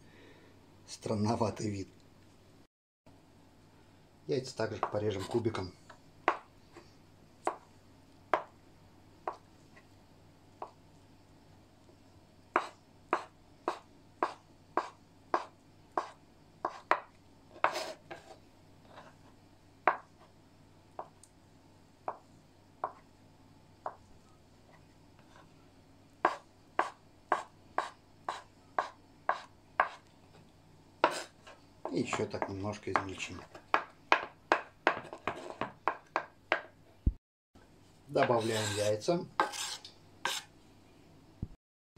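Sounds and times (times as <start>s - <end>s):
knife chopping on wooden board: 12.6s - 18.2s, 26.2s - 30.0s, 31.9s - 36.7s.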